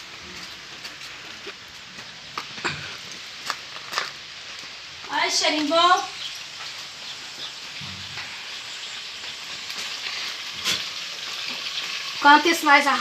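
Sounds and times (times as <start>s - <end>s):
sausage sizzling in a pan: 0.0s - 13.0s.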